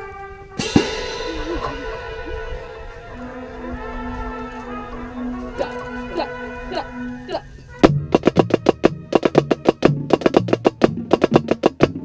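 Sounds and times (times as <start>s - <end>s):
marching band brass chord: 0.0s - 12.0s
drumline hit: 0.5s - 6.8s, 7.8s - 12.0s
cymbal crash ringing: 0.6s - 3.3s.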